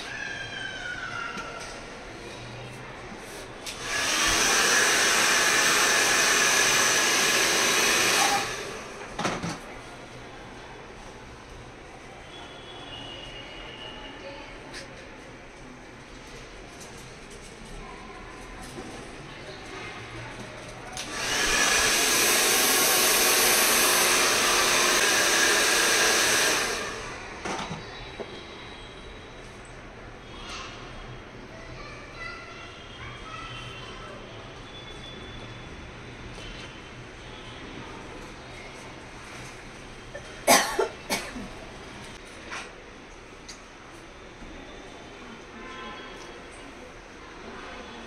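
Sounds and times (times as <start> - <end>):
hair dryer blowing: 3.7 - 9.2, 21.0 - 27.3.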